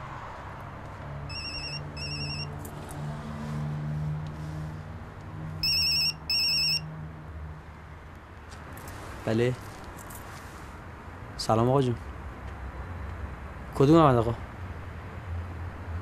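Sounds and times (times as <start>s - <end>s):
phone ringtone warbling tones: 1.3s - 2.5s, 5.6s - 6.8s.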